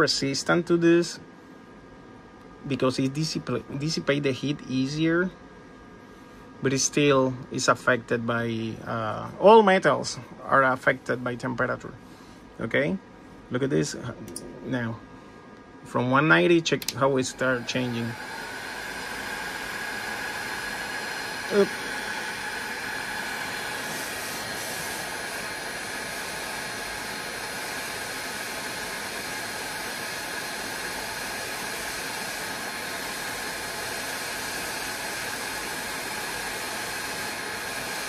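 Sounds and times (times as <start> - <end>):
heat gun blowing air: 17.0 - 38.0.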